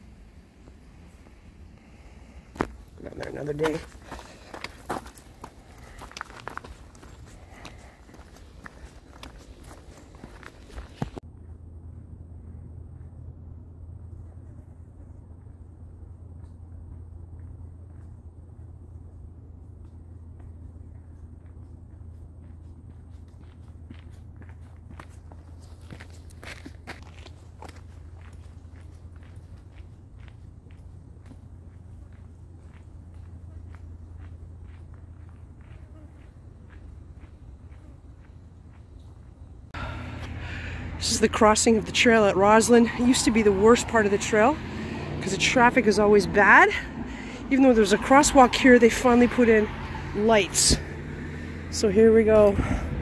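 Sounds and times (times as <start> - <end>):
steady low hum: 0.0 - 53.0
footsteps crunching on gravel: 2.6 - 11.2, 22.0 - 38.9.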